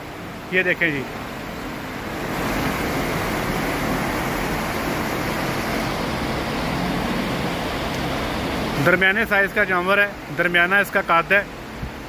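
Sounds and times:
ventilation fans rushing air: 0:00.0 - 0:12.0.

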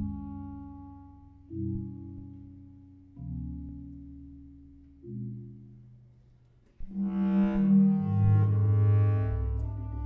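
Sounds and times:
bass clarinet low notes: 0:06.9 - 0:10.0.

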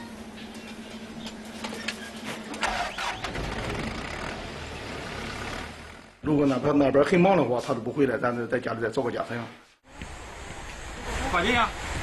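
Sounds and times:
diesel engine rumbling: 0:00.0 - 0:06.6.

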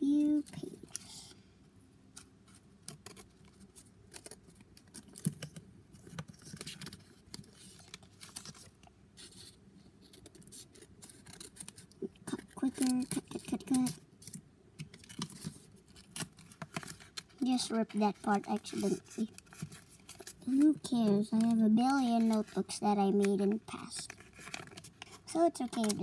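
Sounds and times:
scissors snipping paper: 0:10.1 - 0:17.3, 0:18.2 - 0:26.0.

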